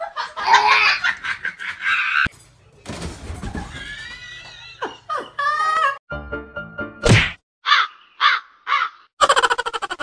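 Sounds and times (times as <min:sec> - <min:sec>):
music: 0:06.1 - 0:07.0
loud sudden whack: 0:07.0 - 0:07.4
harsh caw-like bird calls: 0:07.6 - 0:09.1.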